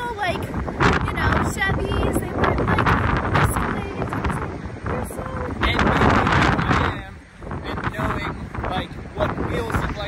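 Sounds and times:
gusting wind buffeting microphone: 0:00.0 - 0:10.0.

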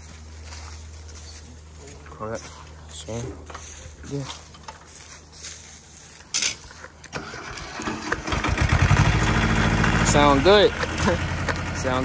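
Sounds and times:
tractor diesel engine running: 0:07.1 - 0:12.0.

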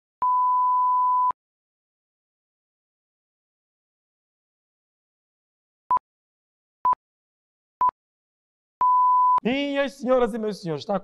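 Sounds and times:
electronic beep: 0:00.2 - 0:01.4, 0:08.8 - 0:09.4.

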